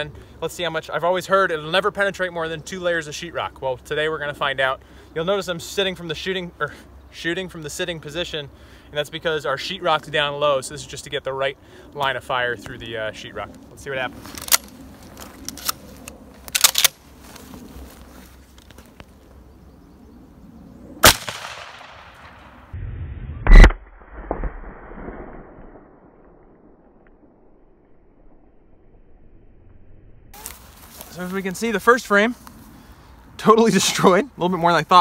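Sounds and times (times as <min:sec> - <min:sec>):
shotgun blasts with echo: 0:21.0 - 0:22.5.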